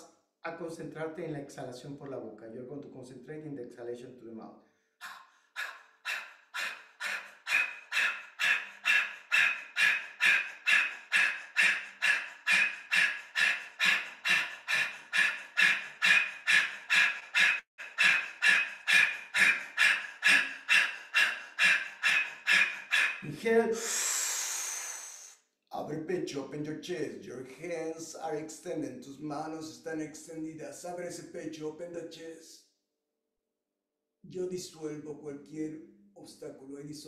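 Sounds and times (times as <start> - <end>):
long breathy exhale: 23.8 - 25.4.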